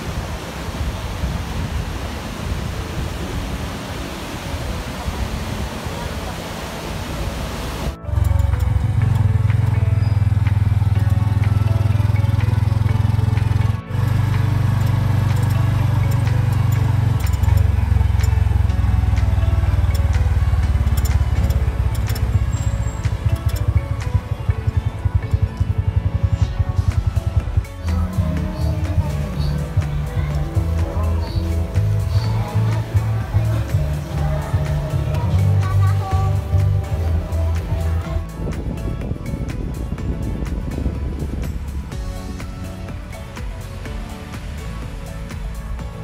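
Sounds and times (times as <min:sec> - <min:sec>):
ocean surf: 0:00.0 - 0:08.3, 0:41.5 - 0:46.0
wind noise on microphone: 0:00.0 - 0:12.0, 0:12.6 - 0:46.0
music with heavy bass line: 0:06.2 - 0:46.0.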